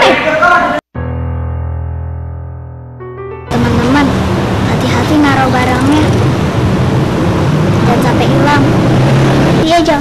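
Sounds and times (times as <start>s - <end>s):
loud low rumbling: 3.5s - 10.0s.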